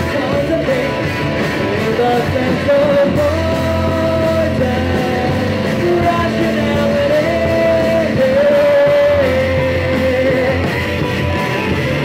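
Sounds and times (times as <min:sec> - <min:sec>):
man singing long held notes: 0:00.0 - 0:10.9
live rock band playing: 0:00.0 - 0:12.0.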